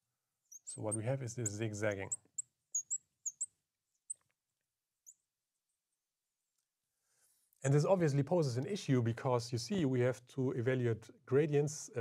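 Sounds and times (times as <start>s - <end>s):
marker squeaking on glass: 0.5s - 4.2s.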